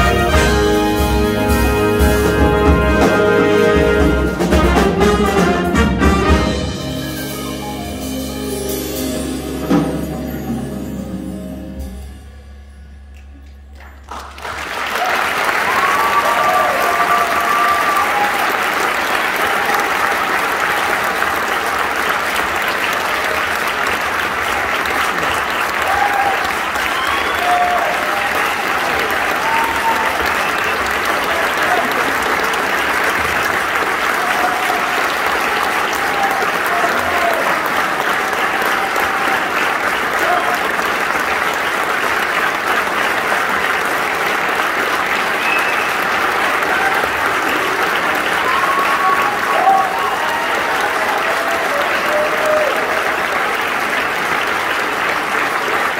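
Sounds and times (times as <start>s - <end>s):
audience clapping: 13.1s - 55.9s
cheers and shouts: 14.8s - 21.6s, 25.2s - 32.4s, 33.8s - 40.8s, 45.3s - 53.5s.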